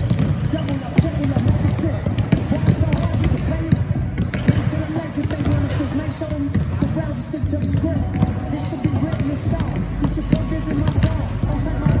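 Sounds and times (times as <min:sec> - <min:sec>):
basketballs bouncing on wooden floor: 0:00.0 - 0:12.0.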